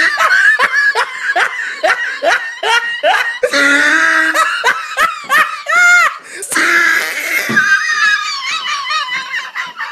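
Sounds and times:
person laughing loudly: 0.0 - 9.9.

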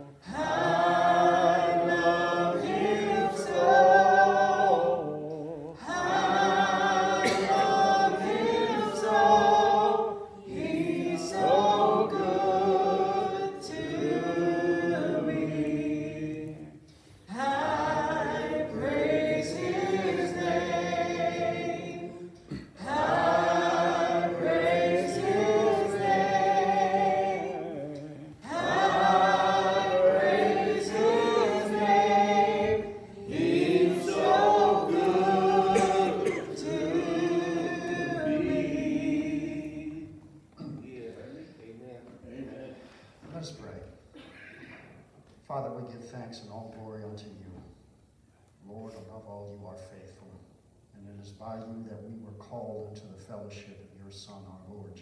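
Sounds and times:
congregation singing a hymn: 0.0 - 41.0.

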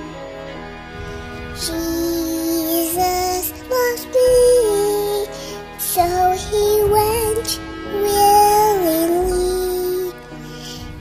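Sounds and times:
instrumental accompaniment: 0.0 - 11.0
girl singing a slow song: 1.5 - 11.0.

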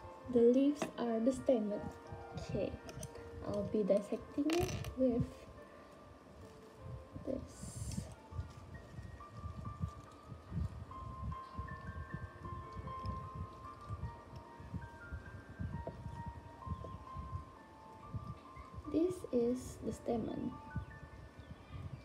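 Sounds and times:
slow background music: 0.0 - 22.0.

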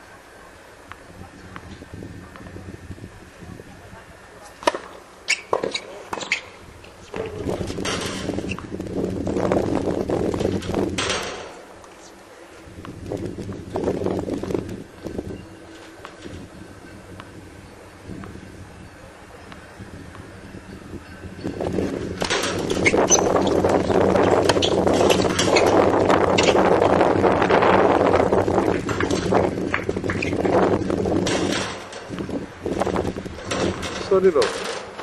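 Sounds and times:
racket striking tennis ball: 4.6 - 6.5.

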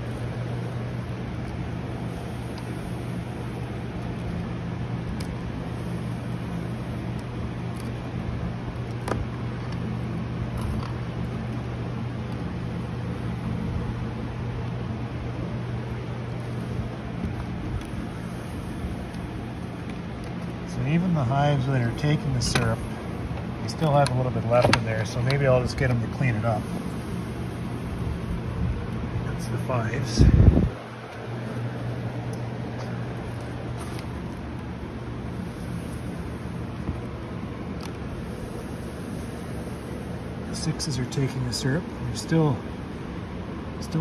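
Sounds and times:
constant rush: 0.0 - 44.0
low droning hum: 0.0 - 44.0.

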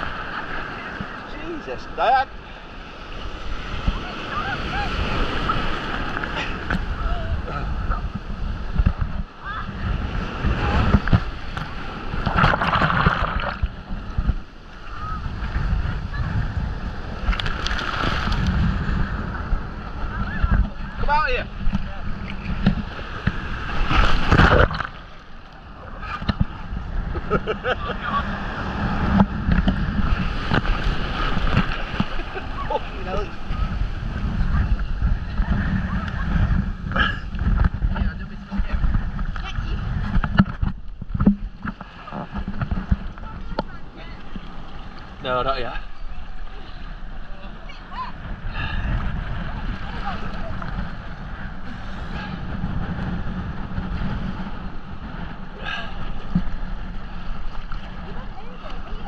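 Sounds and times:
wind on microphone: 0.0 - 1.7, 2.5 - 59.0
surf rushing in shallows: 0.0 - 59.0
water splashing against camera: 4.8 - 16.0, 16.9 - 59.0.

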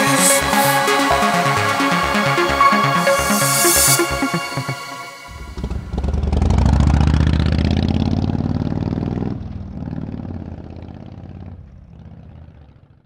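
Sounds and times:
motorcycle engine running: 5.5 - 13.0.

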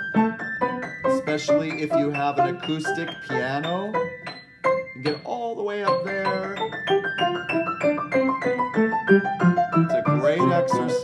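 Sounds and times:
piano playing octave exercise: 0.0 - 11.0.

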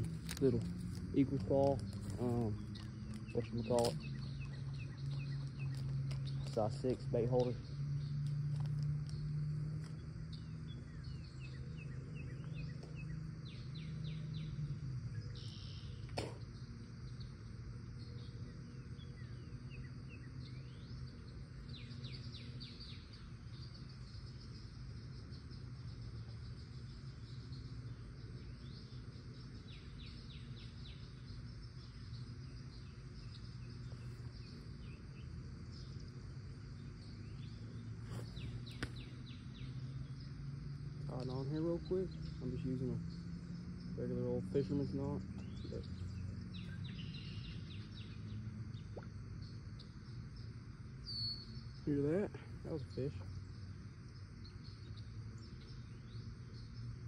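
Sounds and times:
low background hum: 0.0 - 57.0
small birds chirping: 0.0 - 57.0.

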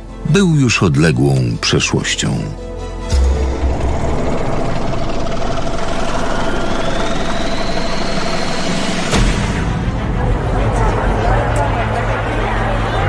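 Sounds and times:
rumbling swell with rising whine: 3.5 - 9.3.

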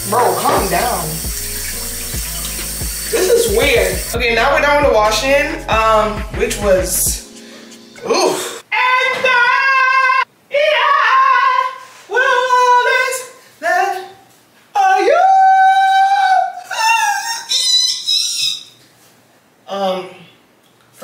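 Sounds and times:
woman singing unaccompanied: 3.2 - 7.2.

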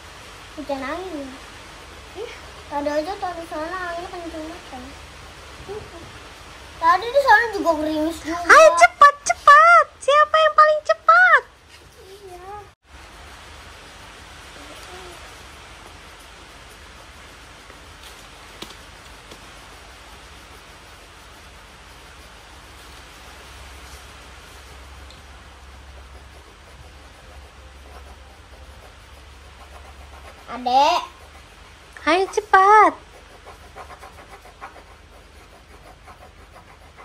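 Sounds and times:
steady background hiss: 0.0 - 37.0
child's voice: 0.6 - 1.4, 2.2 - 5.0, 5.6 - 6.2, 6.8 - 12.8, 14.6 - 15.2, 30.5 - 31.3.

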